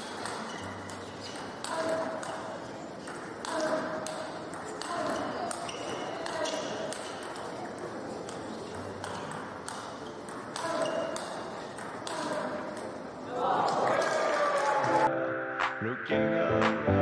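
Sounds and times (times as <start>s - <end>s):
table tennis ball clicking: 0.1s - 7.6s.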